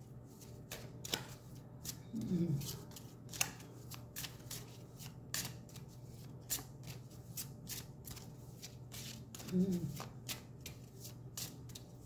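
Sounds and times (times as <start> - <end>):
low steady hum: 0.0 - 12.0
cards being shuffled by hand: 0.3 - 12.0.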